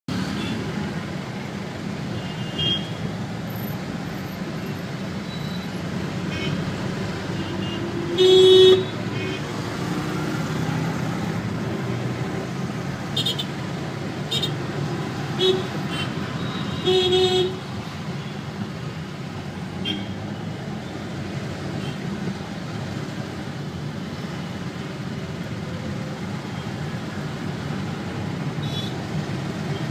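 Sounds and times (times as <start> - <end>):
traffic rumble of engines and tyres: 0.0 - 29.9
vehicle horns tooting: 7.4 - 9.5.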